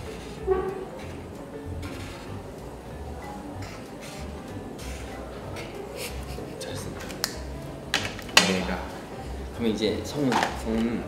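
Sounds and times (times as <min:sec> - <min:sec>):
pen scratching on paper: 0:03.7 - 0:05.2.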